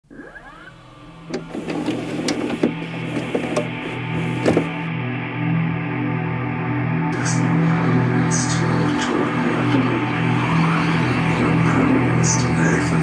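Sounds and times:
sweeping pitch glides: 0.0 - 2.4
low steady drone: 0.0 - 13.0.

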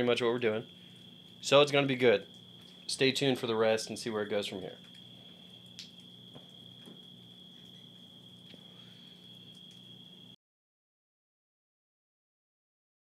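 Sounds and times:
low steady hum: 0.0 - 10.4
night insects trilling: 0.0 - 10.4.

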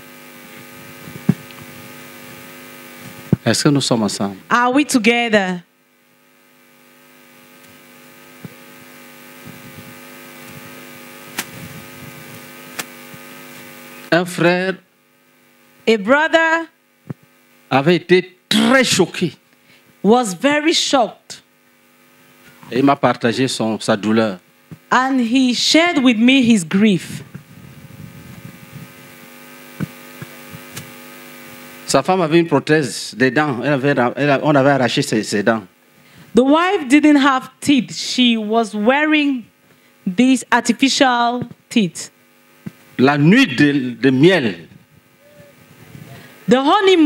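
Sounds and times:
electrical mains hum: 0.0 - 47.0
person speaking: 3.4 - 5.6, 14.1 - 14.8, 22.6 - 27.3, 43.0 - 47.0.

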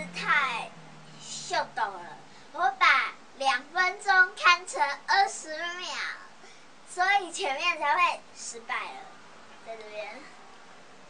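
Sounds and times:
girl half-singing: 0.0 - 10.4.

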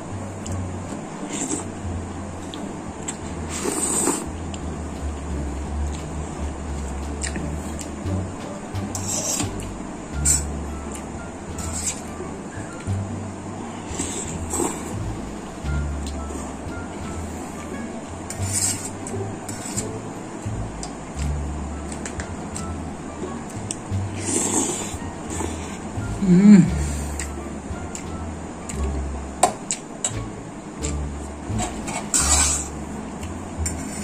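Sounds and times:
background music with low bass: 0.0 - 34.0
spaghetti being slurped: 3.1 - 4.3
metal fork scraping a baking tray: 18.3 - 19.9, 31.6 - 32.8, 33.6 - 34.0.

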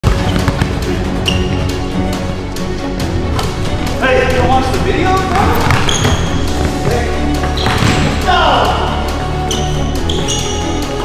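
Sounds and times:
background music with steady beat: 0.0 - 11.0
shoe squeak: 1.2 - 1.7, 5.6 - 6.8, 7.4 - 8.0, 9.4 - 10.9
basketball bouncing on hardwood: 5.6 - 8.1.

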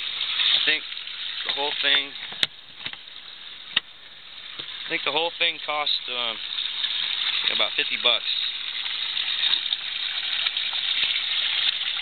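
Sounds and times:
water pouring into pond: 0.0 - 12.0.

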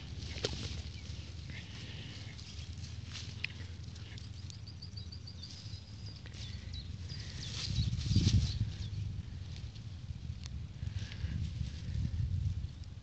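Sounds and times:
small crackles: 0.0 - 4.7, 5.4 - 13.0
grass and weeds rustling: 0.0 - 13.0.

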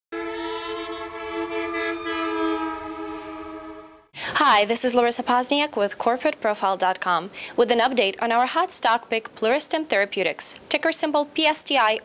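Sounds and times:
sustained horn-like chord: 0.1 - 4.2.

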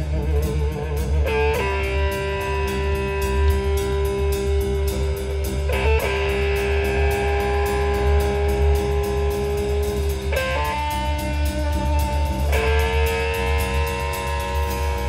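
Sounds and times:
bass and drums: 0.0 - 15.0
electric guitars sustained notes: 0.0 - 15.0.

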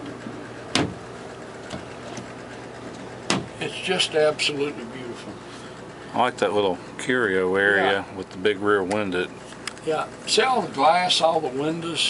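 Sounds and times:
wooden cabinet door knocking shut: 0.7 - 1.0, 3.3 - 3.5.

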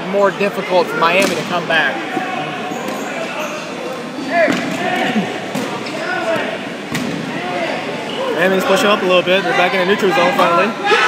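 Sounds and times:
players calling out: 0.2 - 11.0.

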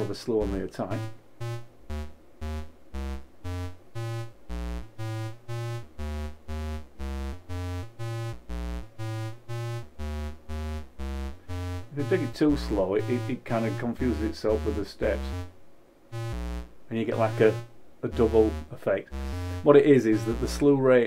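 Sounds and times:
buzzy synth sequencer notes: 0.0 - 20.8.

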